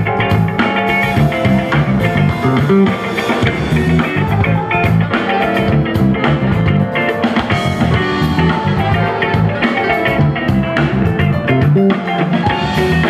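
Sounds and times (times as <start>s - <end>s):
drum kit: 0.0s - 13.0s
electric guitar: 0.0s - 13.0s
keyboard: 0.0s - 13.0s
saxophone: 7.5s - 11.1s.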